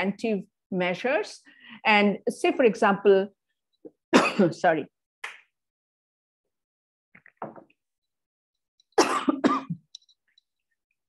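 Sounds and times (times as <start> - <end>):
woman coughing: 4.1 - 4.6, 9.0 - 9.8.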